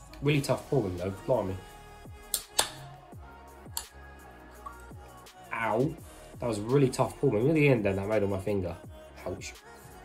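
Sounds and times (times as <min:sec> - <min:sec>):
music with deep bass beat: 0:00.0 - 0:10.0.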